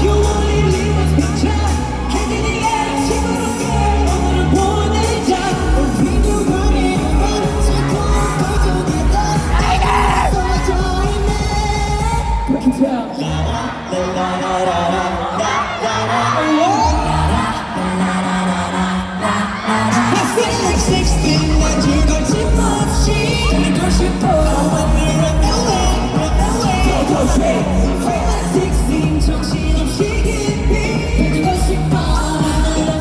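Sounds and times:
heavy beat and bass: 0.0s - 15.3s, 19.9s - 33.0s
pop dance song through speakers: 0.0s - 33.0s.

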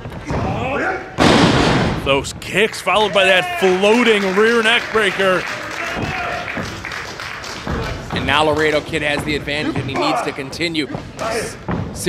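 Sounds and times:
loud crowd noise: 2.0s - 11.7s
voices: 8.1s - 11.6s.

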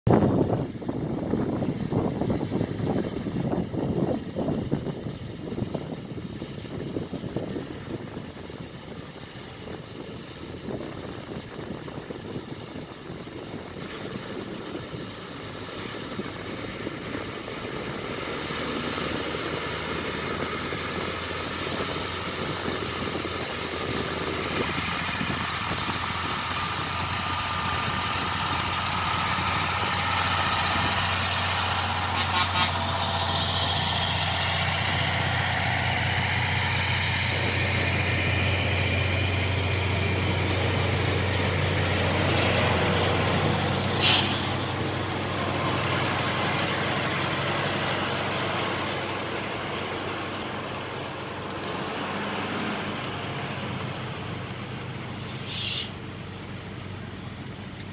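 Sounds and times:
heavy diesel engines droning: 0.1s - 57.9s
short sharp hiss: 44.0s - 44.7s, 55.2s - 56.0s.

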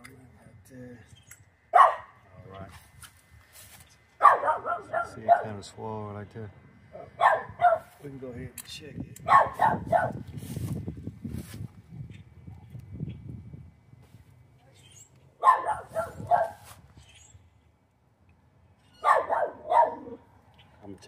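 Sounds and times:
dog barking: 1.7s - 2.2s, 4.2s - 5.6s, 7.0s - 7.9s, 9.3s - 10.2s, 15.4s - 16.6s, 19.0s - 20.2s.

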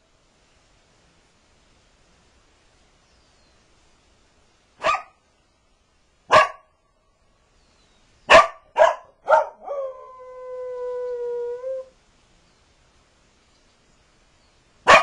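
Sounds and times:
dog barking: 4.8s - 5.2s, 6.3s - 6.7s, 8.3s - 9.8s
dog howling: 9.3s - 11.9s.

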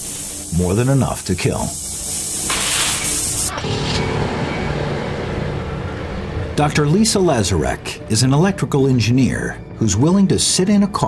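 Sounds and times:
tesla coil sparks crackling: 0.0s - 4.1s
low steady drone: 3.5s - 9.8s.

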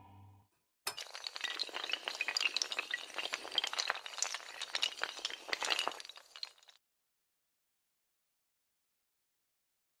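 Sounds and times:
clatter of glassy pieces: 0.9s - 6.8s.

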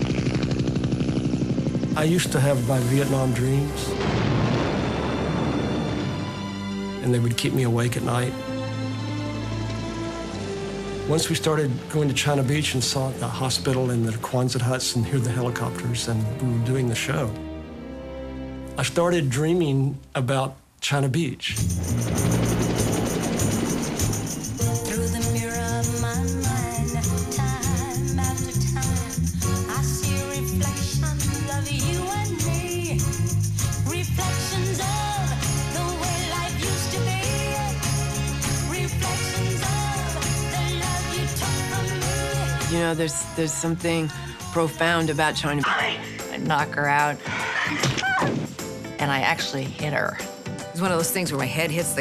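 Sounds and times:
helicopter rotor blades beating: 0.0s - 3.8s, 21.6s - 31.2s
music: 2.0s - 20.3s, 21.5s - 52.0s.

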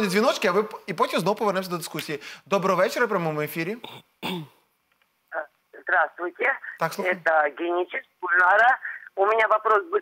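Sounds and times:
caller's voice over telephone: 5.3s - 10.0s.

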